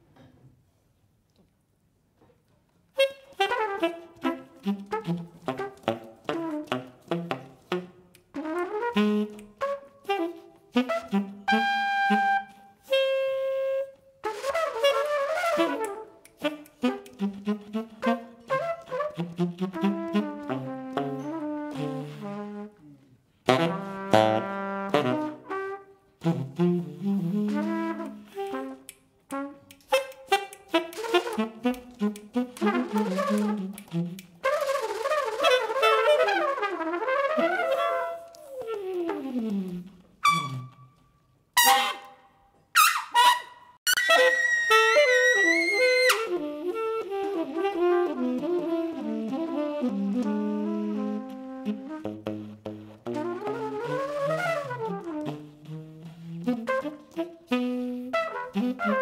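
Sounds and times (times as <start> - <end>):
trumpet improvising: 2.9 - 22.8, 23.5 - 59.0
tenor saxophone improvising: 2.9 - 42.2, 42.8 - 59.0.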